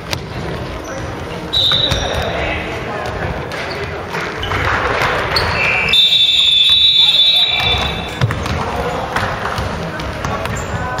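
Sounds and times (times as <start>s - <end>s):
players' voices: 0.0s - 11.0s
basketball bouncing on hardwood floor: 7.6s - 11.0s.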